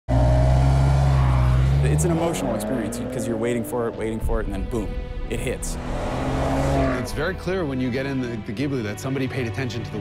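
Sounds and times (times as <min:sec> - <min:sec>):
car engine revving: 0:00.1 - 0:08.2.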